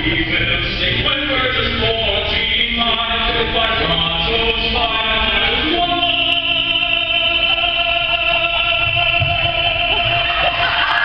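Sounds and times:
male vocal ensemble singing: 0:00.0 - 0:11.0.

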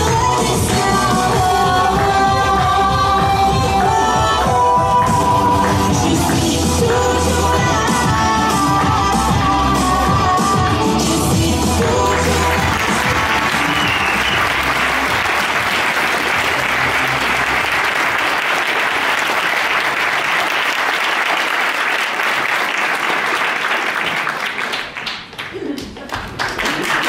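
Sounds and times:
dance music: 0:00.0 - 0:18.3
audience applauding: 0:11.8 - 0:27.0.

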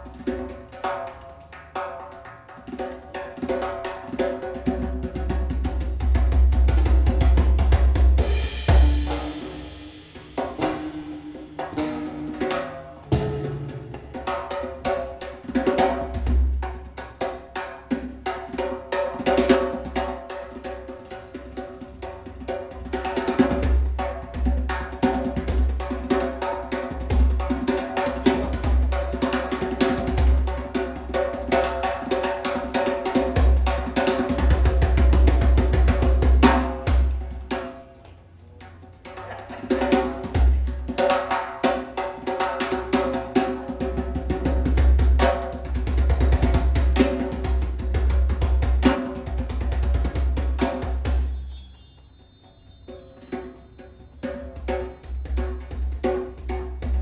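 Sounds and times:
busy drums and percussion: 0:00.0 - 0:57.0.

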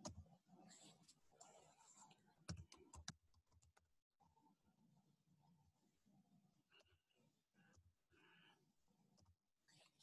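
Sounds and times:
faint keyboard typing: 0:00.0 - 0:03.9.

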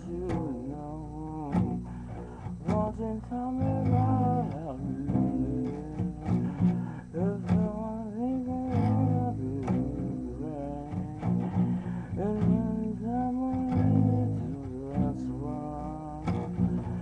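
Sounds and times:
plucked guitar notes: 0:00.0 - 0:17.0
sliding guitar melody: 0:00.0 - 0:17.0.

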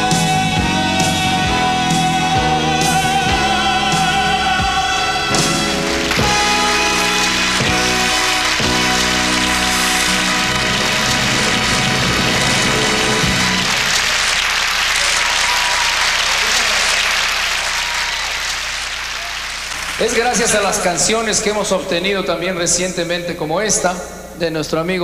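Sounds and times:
live band closing chord: 0:00.0 - 0:22.0
audience applause: 0:02.6 - 0:21.5.

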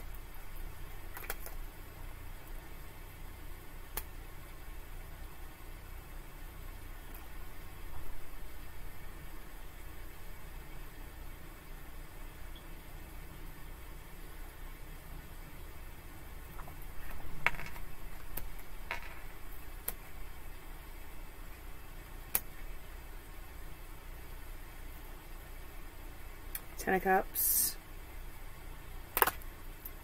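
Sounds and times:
low room hum: 0:00.0 - 0:30.0
cards clicking and slapping: 0:01.1 - 0:01.6, 0:17.1 - 0:20.0, 0:29.1 - 0:29.5.

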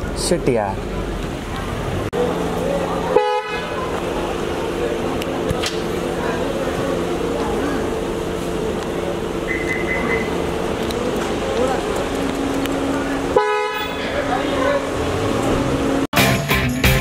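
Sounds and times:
chatter of voices: 0:00.0 - 0:16.0
car pulling away: 0:00.0 - 0:16.2
car horns: 0:03.1 - 0:03.9, 0:13.2 - 0:15.0.

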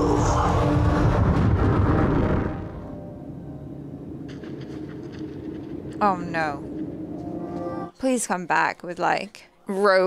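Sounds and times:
deep rumble: 0:00.0 - 0:07.2
low drone: 0:00.0 - 0:07.9.

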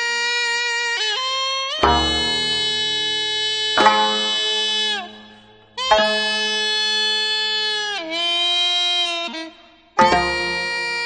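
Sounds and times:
reedy wind melody: 0:01.8 - 0:07.3
sharp struck stroke: 0:01.8 - 0:07.4, 0:10.0 - 0:11.0.

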